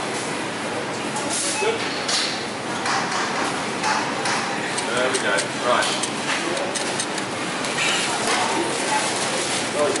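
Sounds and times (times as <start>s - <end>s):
supermarket background noise: 0.0s - 10.0s.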